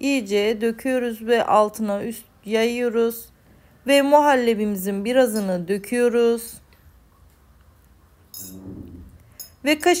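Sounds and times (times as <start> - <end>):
metal spoon clinking on cookware: 8.3 - 8.6, 9.3 - 9.7.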